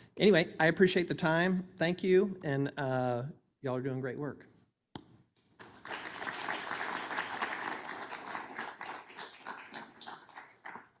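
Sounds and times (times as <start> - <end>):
audience applauding: 5.6 - 11.0.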